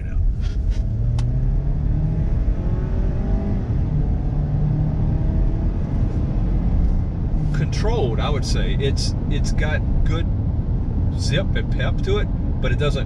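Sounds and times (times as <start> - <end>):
car engine accelerating: 0.0 - 13.0.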